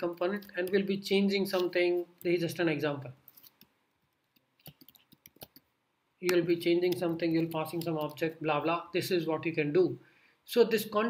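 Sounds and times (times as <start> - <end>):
computer keyboard typing: 0.0 - 2.3, 3.3 - 5.7, 6.3 - 8.3.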